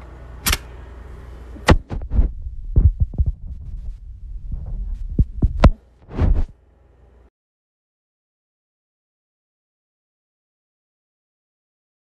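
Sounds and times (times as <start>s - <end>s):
low steady hum: 0.0s - 7.3s.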